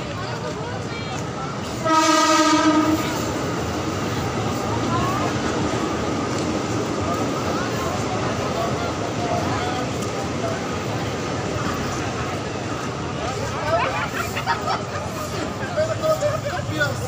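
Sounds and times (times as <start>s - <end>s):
crowd chatter: 0.0s - 17.0s
steady horn blast: 1.8s - 3.4s.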